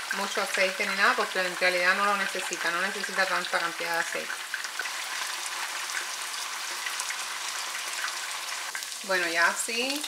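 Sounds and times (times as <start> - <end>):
fish sizzling in hot oil: 0.0 - 10.0.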